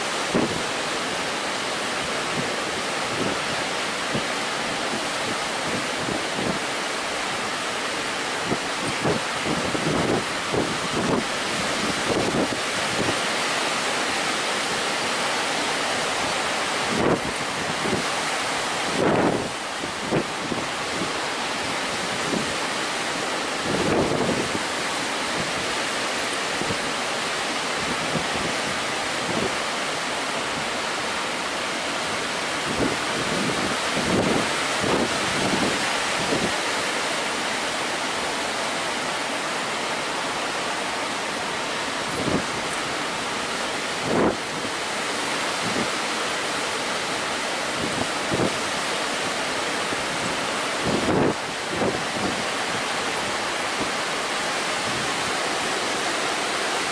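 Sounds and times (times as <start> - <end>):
wind buffeting microphone: 0.0 - 0.9, 2.0 - 13.8, 14.4 - 46.7, 47.4 - 56.9
surf breaking on beach: 0.0 - 56.9.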